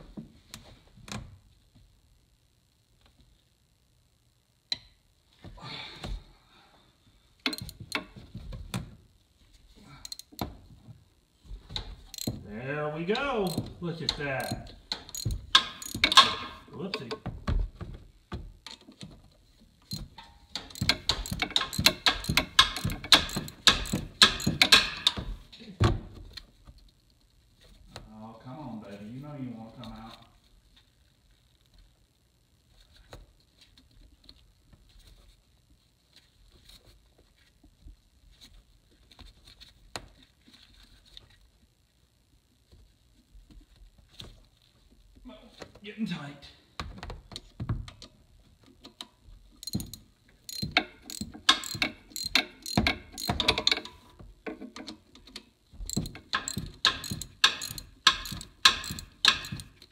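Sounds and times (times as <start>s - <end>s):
ratchet clicking: 12.1s - 12.4s, 14.4s - 16.4s, 20.6s - 25.2s, 49.6s - 53.9s, 55.9s - 59.8s
small handling clicks: 14.4s - 16.4s, 48.8s - 54.0s, 54.7s - 59.9s
metal parts clattering: 14.4s - 16.6s, 20.6s - 25.2s, 49.6s - 54.0s, 55.9s - 59.8s.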